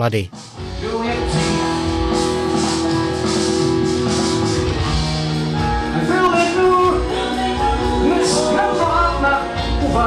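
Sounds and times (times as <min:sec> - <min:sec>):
rock backing track: 0:00.0 - 0:10.0.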